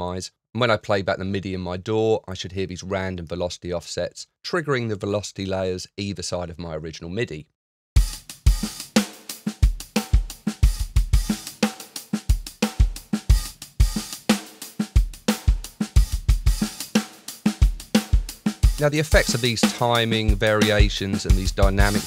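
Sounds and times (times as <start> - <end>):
hi-hat groove: 8.0 - 22.0
snare drum: 8.0 - 22.0.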